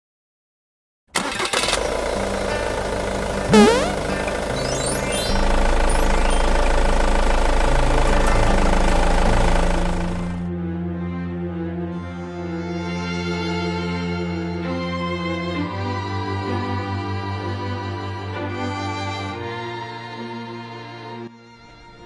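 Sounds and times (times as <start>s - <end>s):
cartoon van engine running: 1.2s - 10.5s
intro jingle: 2.5s - 10.4s.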